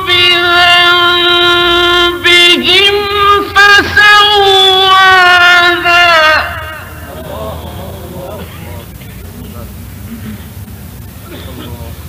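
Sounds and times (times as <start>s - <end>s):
man reciting melodic note: 0.0s - 8.0s
recording hiss: 0.0s - 12.0s.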